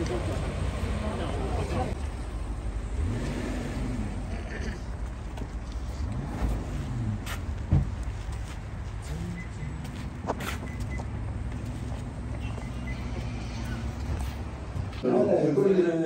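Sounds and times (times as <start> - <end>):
car engine idling: 0.0 - 15.0.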